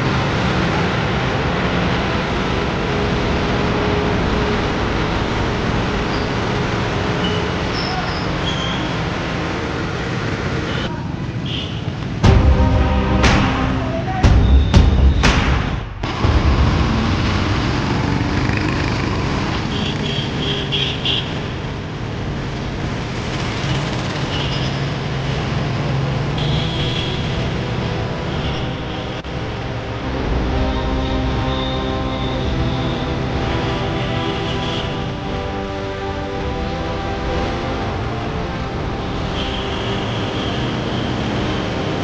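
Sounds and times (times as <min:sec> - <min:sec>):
music playing: 0:00.0 - 0:07.4, 0:12.2 - 0:18.7, 0:26.4 - 0:42.0
passing traffic rumble: 0:00.0 - 0:42.0.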